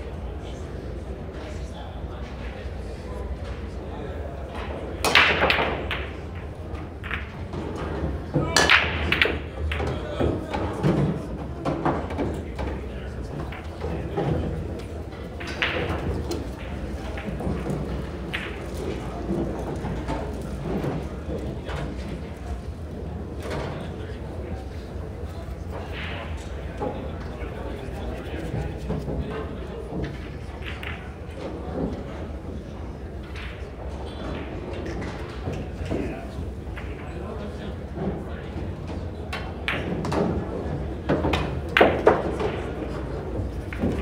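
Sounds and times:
murmur of crowd in hall: 0.0 - 44.0
pool balls clattering: 4.3 - 44.0
cue ball cracking into rack: 5.0 - 10.0, 13.4 - 20.9, 41.1 - 44.0.

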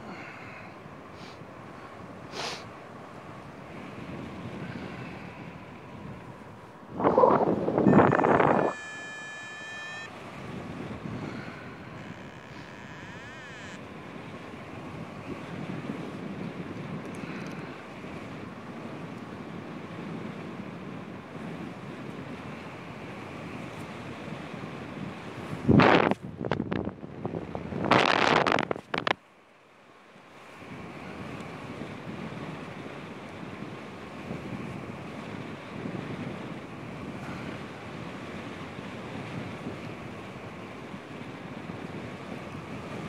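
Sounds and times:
wind rushing over microphone: 1.0 - 29.2, 30.6 - 43.0
high electronic tone: 7.8 - 10.2, 11.5 - 13.8.

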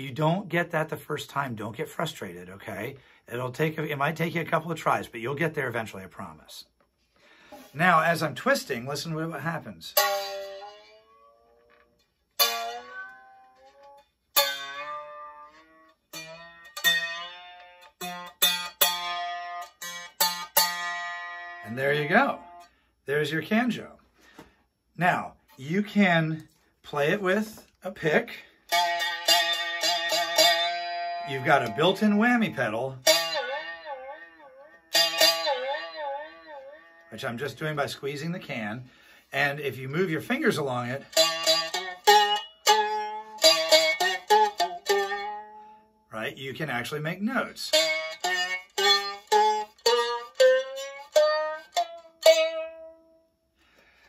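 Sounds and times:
plucked string rising in pitch: 10.0 - 21.6, 28.7 - 32.3, 32.9 - 37.1.

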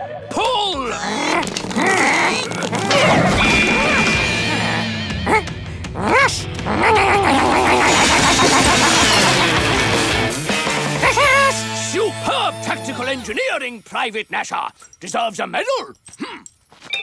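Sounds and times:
cartoon background music: 0.0 - 13.8.

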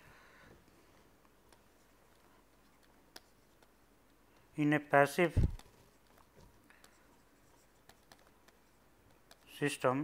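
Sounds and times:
stylus writing on a tablet: 1.4 - 4.5, 5.5 - 9.8.

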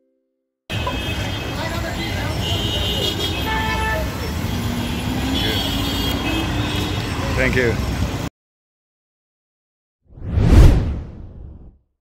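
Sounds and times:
deep whoosh: 10.1 - 11.7.

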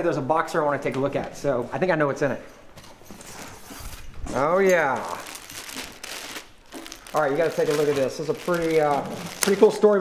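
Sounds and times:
plastic packaging crinkling: 3.2 - 10.0.

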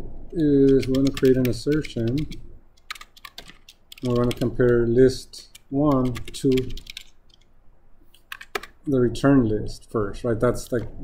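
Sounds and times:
keyboard typing: 0.6 - 4.8, 5.4 - 7.5, 8.1 - 8.9.

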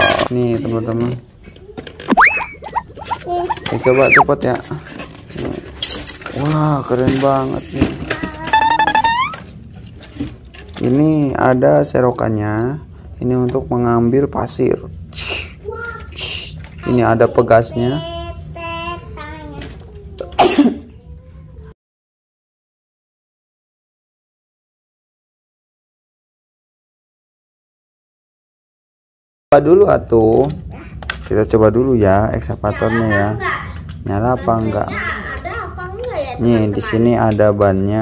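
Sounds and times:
styrofoam squeaking: 2.1 - 4.3, 8.4 - 9.4.

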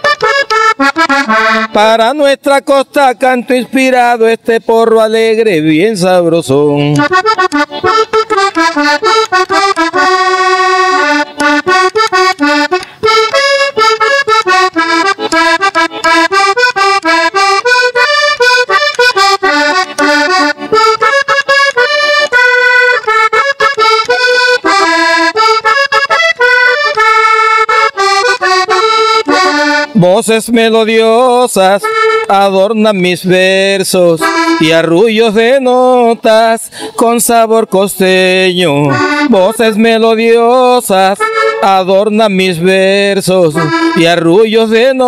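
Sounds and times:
button accordion melody: 0.0 - 45.0.

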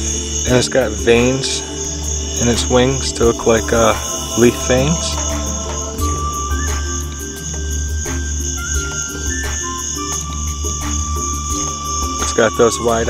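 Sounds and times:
background music with held notes: 0.0 - 13.0
crickets chirping: 0.0 - 13.0.

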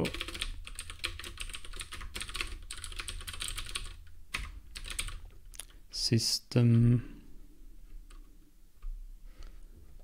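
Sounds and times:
typing on computer keyboard: 0.0 - 5.2.

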